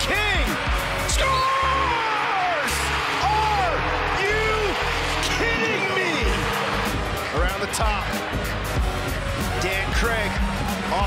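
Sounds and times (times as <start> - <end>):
loud music with heavy bass: 0.0 - 2.0, 2.7 - 11.0
crowd shouting: 0.0 - 11.0.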